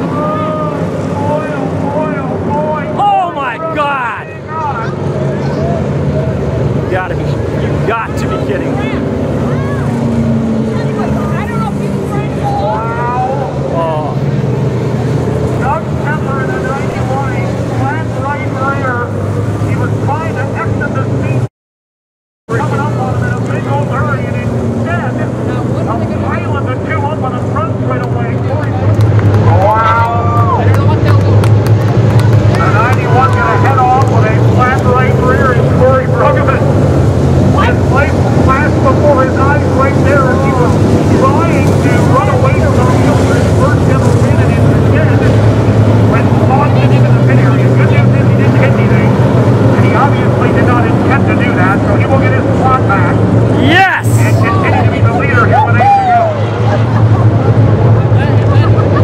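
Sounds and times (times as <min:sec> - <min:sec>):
race car engines: 0:00.0 - 0:21.5, 0:22.5 - 0:59.0.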